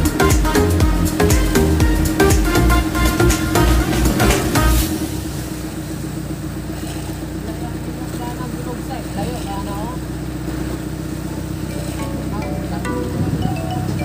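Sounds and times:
electronic music: 0.0s - 5.6s, 11.6s - 14.0s
boat engine droning: 0.0s - 14.0s.

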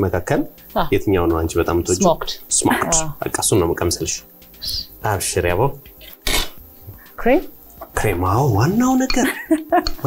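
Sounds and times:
cutlery and plates clinking: 9.0s - 10.0s.

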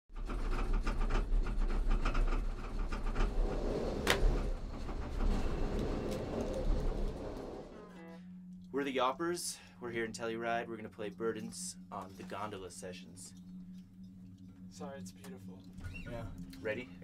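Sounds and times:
gondola cabin rumbling and rattling: 0.1s - 8.0s.

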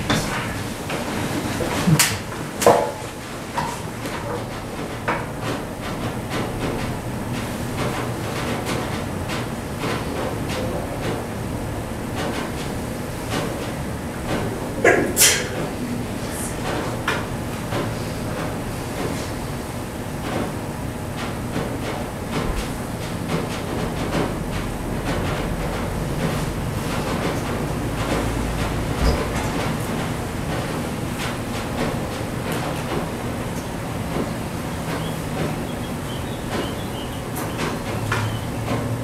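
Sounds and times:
rumbling clattering film soundtrack: 20.2s - 39.0s.

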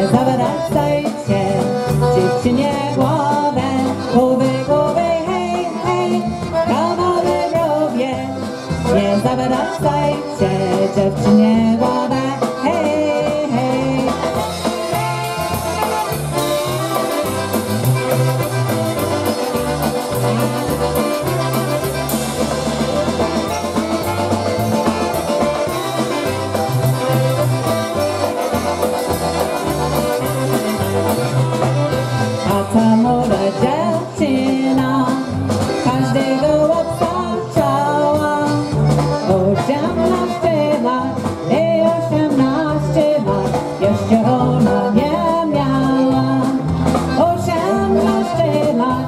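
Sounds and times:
polka band playing: 0.0s - 49.0s.

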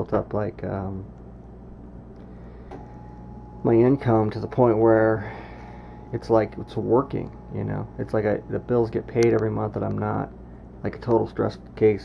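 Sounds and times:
steady low hum: 0.0s - 12.0s
thin steady tone: 2.3s - 11.0s.

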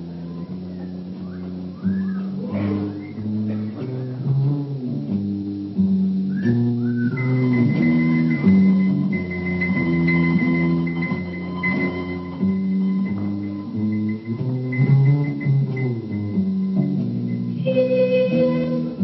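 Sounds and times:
bass guitar and guitar music: 0.0s - 19.0s.

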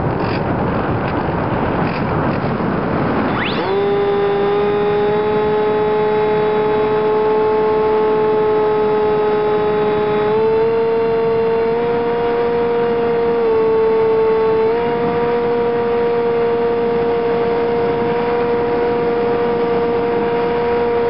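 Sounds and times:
propeller rushing noise: 0.0s - 21.0s
electric motor whine: 2.7s - 21.0s.

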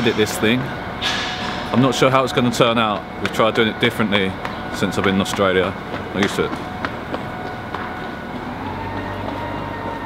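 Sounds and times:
low hum: 0.0s - 10.0s
street traffic rumble: 0.0s - 10.0s.

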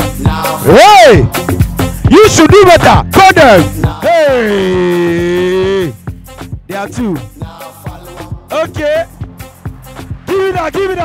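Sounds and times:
dance music: 0.0s - 11.0s.

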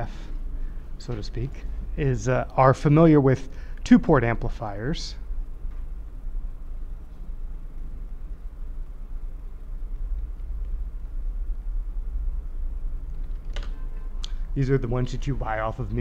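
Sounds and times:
faint rumble: 0.0s - 16.0s
steady low hum: 0.0s - 16.0s.

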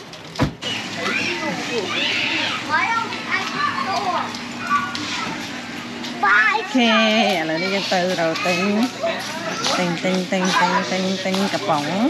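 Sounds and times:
young children chattering: 1.0s - 12.0s.

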